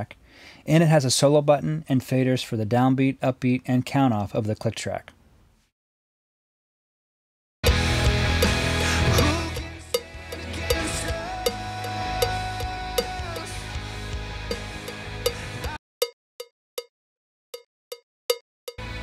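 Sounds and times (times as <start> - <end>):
recorded song playback: 7.6 - 15.8, 18.8 - 19.0.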